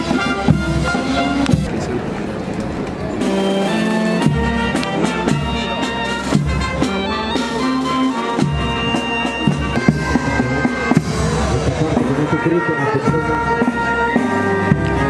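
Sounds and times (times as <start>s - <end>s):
wind instruments playing long notes: 0.0s - 1.9s, 3.1s - 15.0s
regular drum beats: 0.0s - 2.0s, 3.2s - 15.0s.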